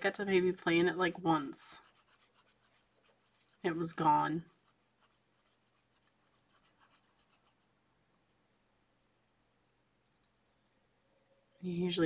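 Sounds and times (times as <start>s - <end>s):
pen scratching on paper: 0.8s - 7.7s.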